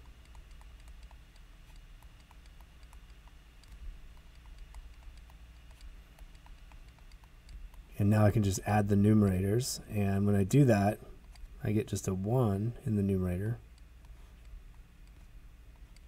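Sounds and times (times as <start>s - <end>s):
faint light clicking: 0.0s - 7.9s
low steady hum: 0.0s - 16.0s.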